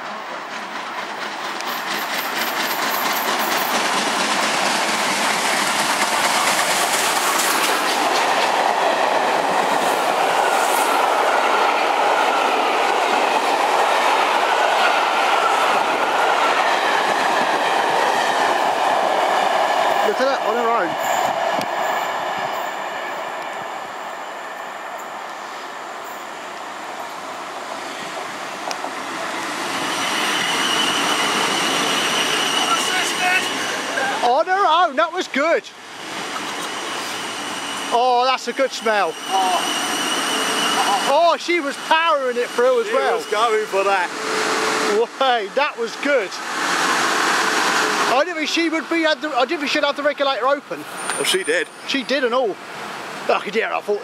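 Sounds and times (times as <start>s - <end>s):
coaches clattering over rail joints: 0.0s - 11.0s
steam locomotive working hard: 0.0s - 26.4s, 27.0s - 54.0s.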